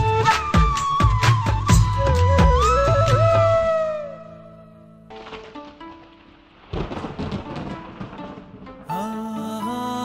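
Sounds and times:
thunder and rain: 5.1 - 8.9.

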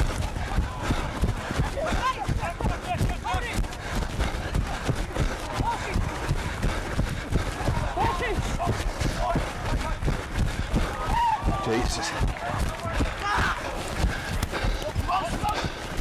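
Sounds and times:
players shouting: 0.0 - 3.8, 7.2 - 15.9
running footsteps on grass: 0.0 - 16.0.

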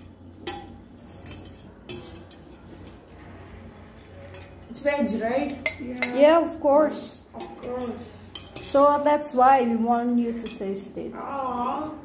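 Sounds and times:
metal ladle clinking on pot: 0.0 - 3.0, 5.6 - 6.2, 7.4 - 8.8.

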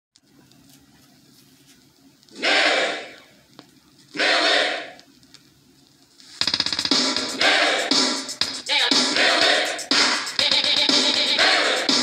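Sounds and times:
music from vinyl record: 6.2 - 12.0
steady drum beat: 6.4 - 12.0.

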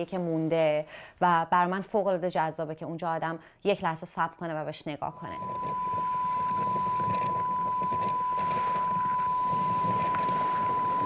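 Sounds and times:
steady high electronic tone: 5.1 - 11.0
low rough rumble: 5.2 - 11.0.

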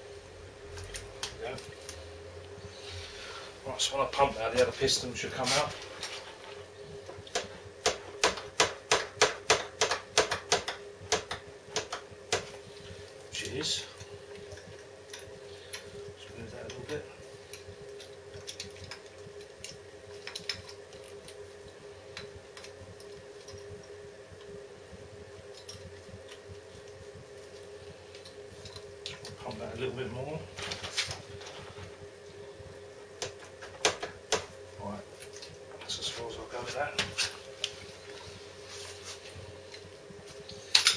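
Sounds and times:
steady hum: 0.0 - 40.9.

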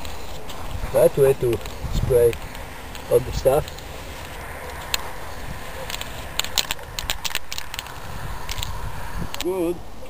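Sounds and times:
sharp crackling clicks: 1.5 - 9.6.

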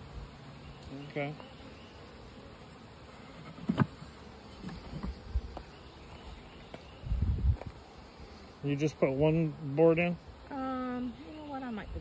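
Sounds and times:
honeybees buzzing: 0.0 - 12.0.

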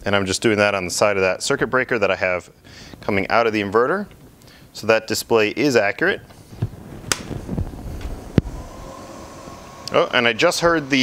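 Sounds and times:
cooling fans whirring: 6.2 - 11.0
sharp click: 7.1 - 7.3.

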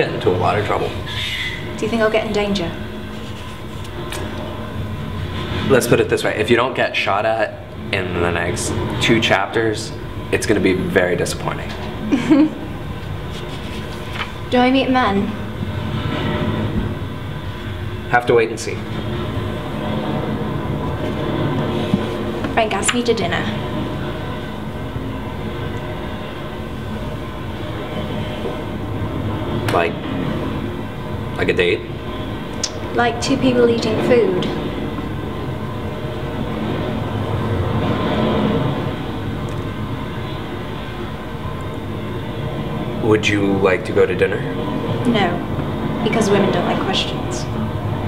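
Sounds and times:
train carriage rumbling: 0.0 - 48.0.

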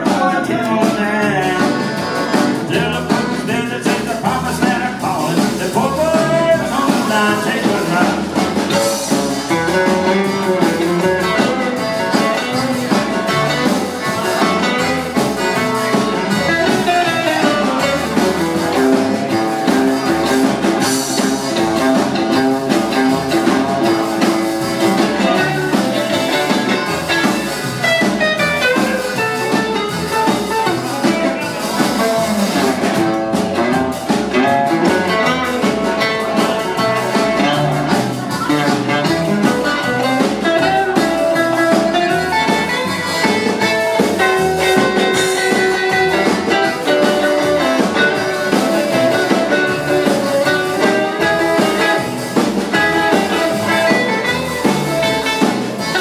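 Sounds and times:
accordion: 0.0 - 56.0
drum kit dance beat: 0.0 - 56.0
guitar: 0.0 - 56.0
upright double bass: 0.0 - 56.0.

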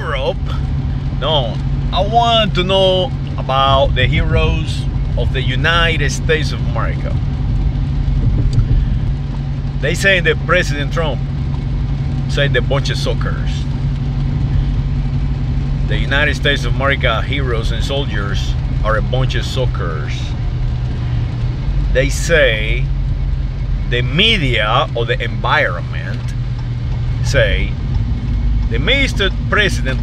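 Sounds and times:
man talking: 0.0 - 7.2, 9.8 - 11.2, 12.3 - 13.7, 15.9 - 20.3, 21.9 - 22.9, 23.9 - 26.4, 27.2 - 27.8, 28.7 - 30.0
car cabin rumble: 0.0 - 30.0.

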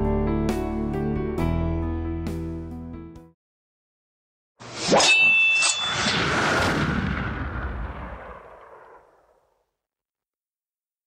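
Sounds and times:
booming crash: 5.8 - 9.4.

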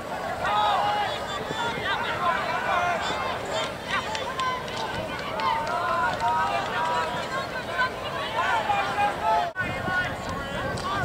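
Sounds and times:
outdoor background noise: 0.0 - 11.0
voices shouting and calling out: 0.0 - 11.0.

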